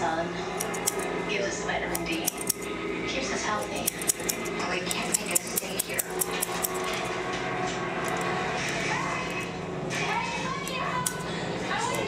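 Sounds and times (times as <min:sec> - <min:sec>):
steady low hum: 0:00.0 - 0:12.0
shears snipping hair: 0:00.5 - 0:01.1, 0:01.7 - 0:02.7, 0:03.3 - 0:07.3, 0:08.0 - 0:12.0.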